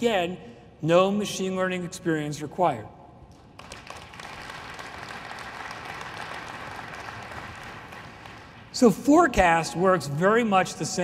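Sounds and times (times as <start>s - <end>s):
large audience applauding: 3.6s - 8.8s.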